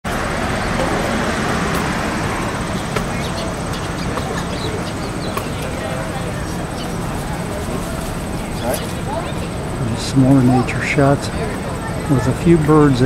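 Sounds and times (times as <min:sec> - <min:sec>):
distant voices: 0:00.0 - 0:13.0
traffic noise: 0:00.0 - 0:13.0
small birds chirping: 0:00.1 - 0:12.9.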